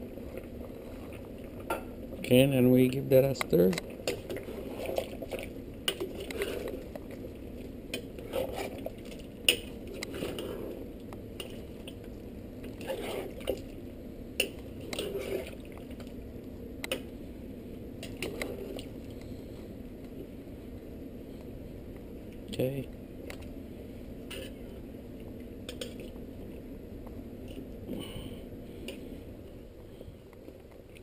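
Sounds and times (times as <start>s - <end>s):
stew sloshing and scraping: 3.6s - 16.4s, 18.0s - 19.2s.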